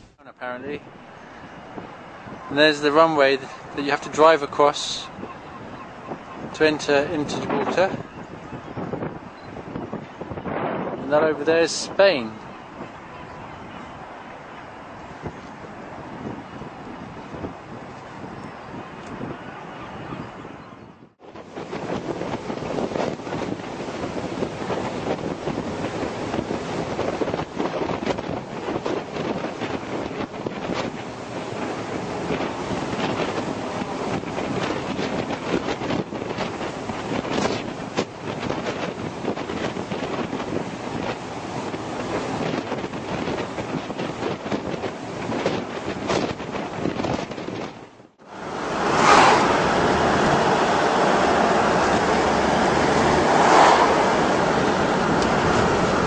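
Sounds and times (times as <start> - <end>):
car road and engine noise: 0.0 - 56.0
wind buffeting microphone: 0.0 - 56.0
rushing water: 21.4 - 47.6, 48.2 - 56.0.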